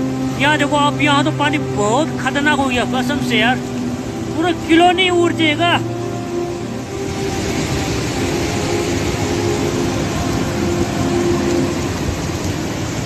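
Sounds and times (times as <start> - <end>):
river rushing roar: 0.0 - 13.0.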